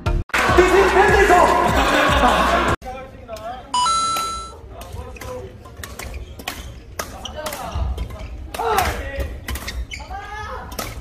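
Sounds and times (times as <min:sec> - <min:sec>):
two-note ding-dong chime: 0:03.8 - 0:04.5.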